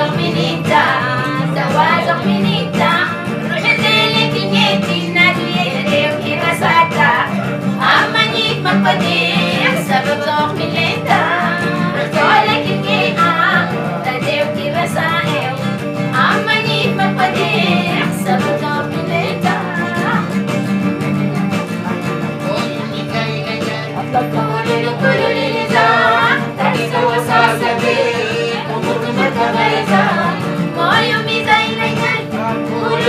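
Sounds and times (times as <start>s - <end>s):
woman singing: 0.0s - 20.4s, 22.0s - 33.0s
acoustic guitar: 0.0s - 33.0s.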